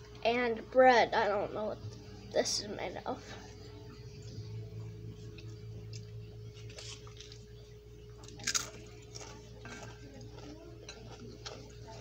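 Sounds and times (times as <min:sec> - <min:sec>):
low hum: 0:00.0 - 0:12.0
chewing crusty sandwich: 0:05.4 - 0:12.0.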